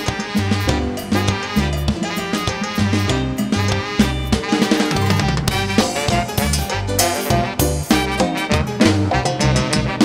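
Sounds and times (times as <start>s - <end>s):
drum kit and congas: 0.0s - 10.0s
electric bass line: 0.0s - 10.0s
tropical dance band playing: 0.0s - 10.0s
trumpet and saxophones melody: 0.0s - 10.0s.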